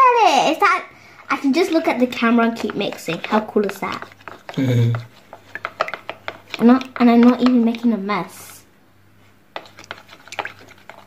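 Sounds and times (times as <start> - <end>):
stick stirring slime in plastic bowl: 1.2 - 11.0.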